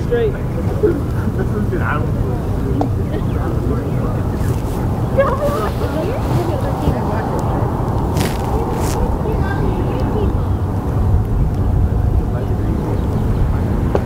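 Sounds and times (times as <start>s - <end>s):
distant voices calling out: 0.0s - 14.0s
steady low rumble: 0.0s - 14.0s.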